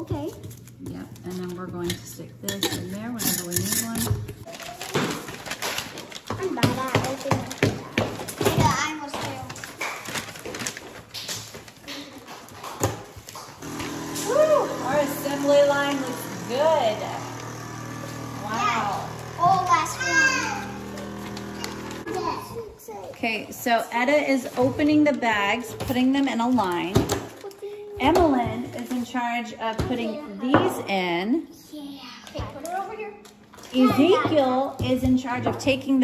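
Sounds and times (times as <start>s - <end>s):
paper bags crinkling: 4.4s - 16.4s, 19.1s - 22.3s
vacuum sealer pump humming: 13.6s - 22.4s
children calling: 13.6s - 23.0s
children's voices: 18.4s - 23.2s, 27.4s - 28.0s.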